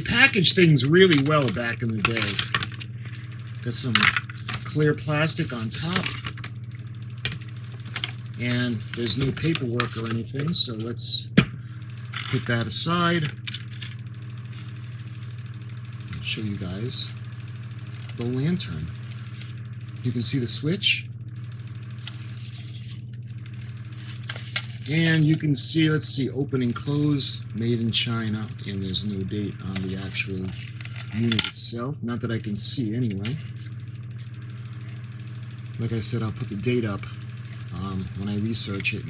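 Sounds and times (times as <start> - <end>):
low electrical hum: 0.0 - 39.0.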